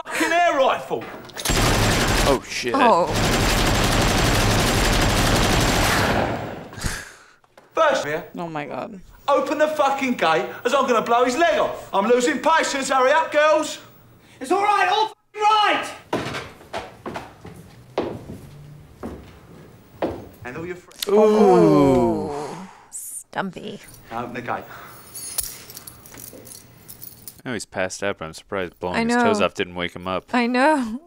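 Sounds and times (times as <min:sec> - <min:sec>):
automatic gunfire: 0:01.5 - 0:06.7.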